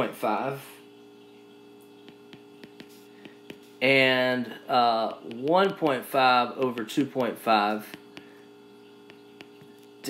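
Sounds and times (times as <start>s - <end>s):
low electrical hum: 0.0s - 10.0s
stylus tapping on glass screen: 2.0s - 3.7s, 9.0s - 9.8s
man speaking: 3.8s - 8.0s.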